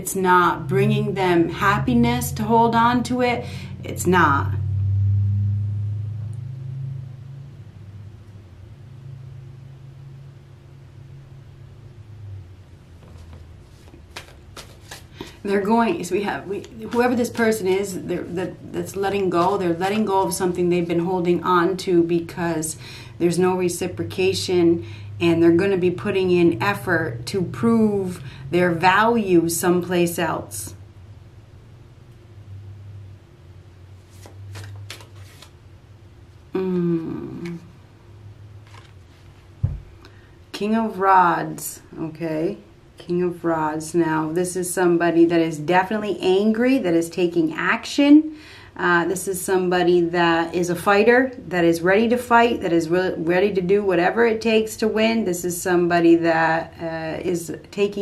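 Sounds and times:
low steady hum: 0.0s - 58.0s
cards being shuffled: 13.0s - 15.5s, 34.0s - 35.6s, 38.6s - 39.5s.

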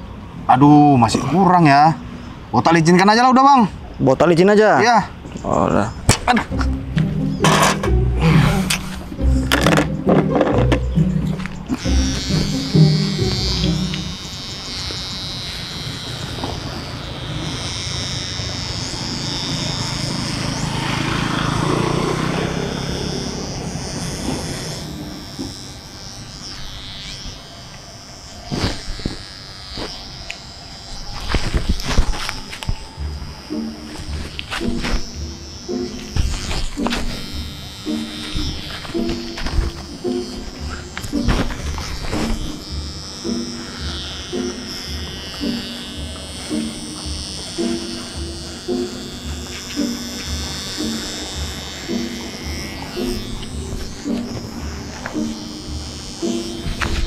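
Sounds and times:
electric hair clipper buzzing: 6.4s - 57.0s.

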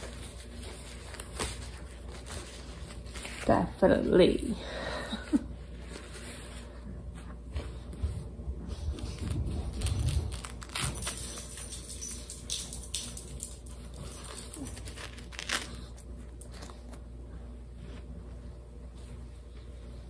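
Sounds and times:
diaper and cloth rustling: 0.0s - 4.6s.

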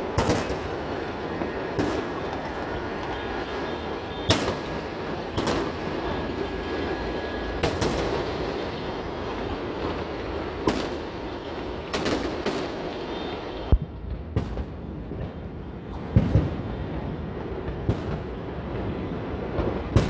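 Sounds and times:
sharp firework bangs: 0.0s - 0.8s, 1.4s - 6.0s, 7.6s - 8.3s, 10.6s - 11.2s, 11.9s - 15.3s
rumble of distant fireworks: 0.0s - 20.0s.

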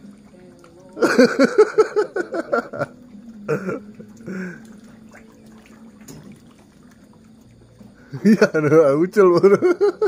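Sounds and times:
water splashing from fish: 0.0s - 9.2s
faint steady hum: 0.0s - 10.0s.

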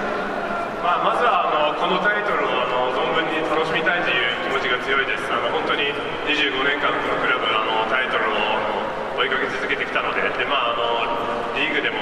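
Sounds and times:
crowd murmur: 0.0s - 1.0s
man talking over public address: 0.6s - 12.0s.

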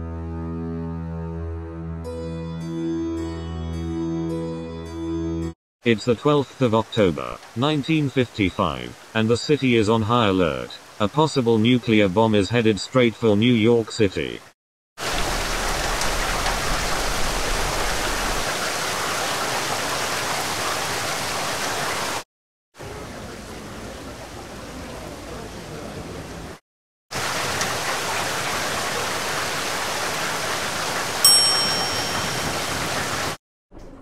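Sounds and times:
steady rain falling: 6.2s - 12.1s, 15.0s - 22.2s, 22.8s - 33.4s
high bell ding: 31.2s - 32.6s.

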